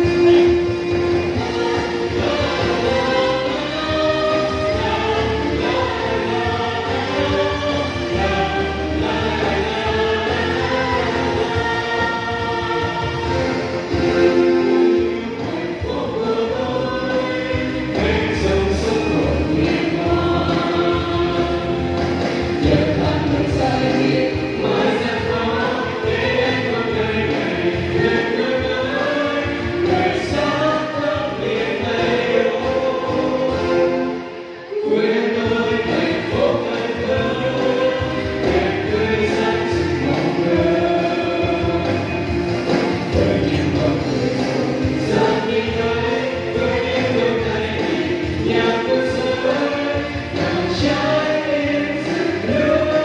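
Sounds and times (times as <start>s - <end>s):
mixed group singing in harmony: 0.0s - 53.0s
musical accompaniment: 0.0s - 53.0s.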